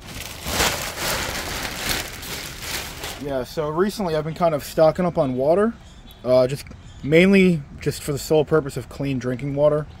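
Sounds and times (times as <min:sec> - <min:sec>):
plastic bag crinkling: 0:00.0 - 0:03.4.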